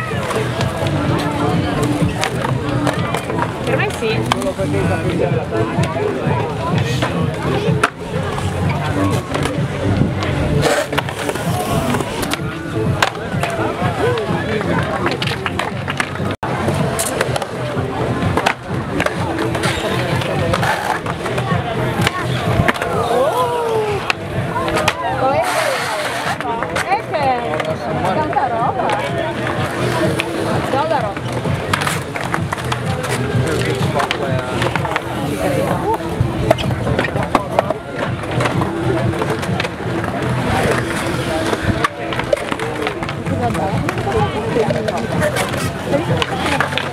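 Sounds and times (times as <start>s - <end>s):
background voices: 0.0s - 46.9s
crowd chatter: 0.0s - 46.9s
music: 0.0s - 46.9s
skateboards rolling on concrete: 0.0s - 46.9s
skateboards knocking on surface: 0.1s - 46.9s.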